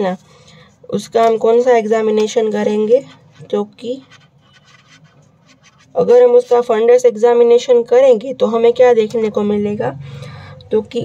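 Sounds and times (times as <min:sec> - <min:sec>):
felt-tip marker scratching on paper: 0:02.5 - 0:06.8.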